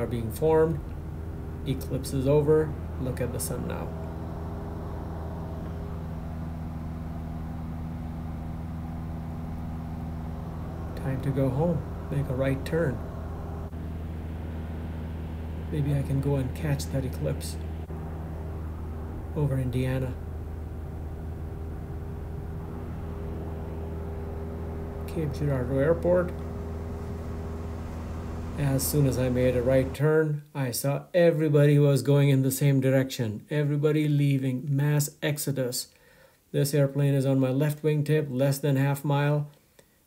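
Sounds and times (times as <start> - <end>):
airplane engine droning in cockpit: 0.0 - 30.1.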